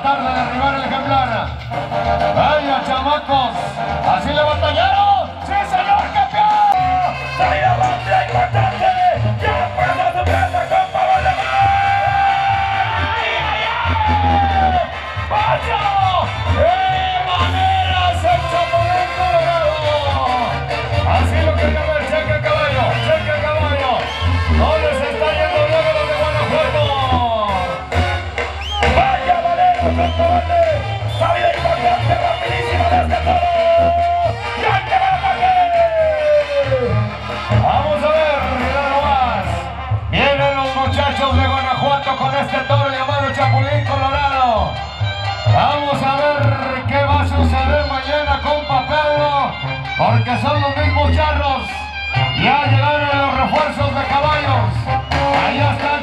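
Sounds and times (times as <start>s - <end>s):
brass band music: 0.0s - 56.0s
tuba bass line: 0.0s - 56.0s.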